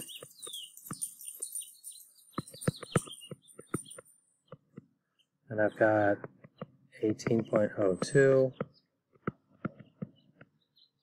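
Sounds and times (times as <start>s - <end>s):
birds chirping faintly: 0.0s - 11.0s
stylus tapping on tablet screen: 2.3s - 5.1s, 6.2s - 11.0s.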